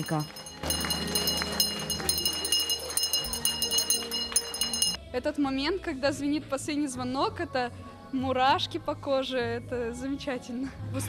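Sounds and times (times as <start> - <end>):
handbell ringing rapidly: 0.0 - 5.0.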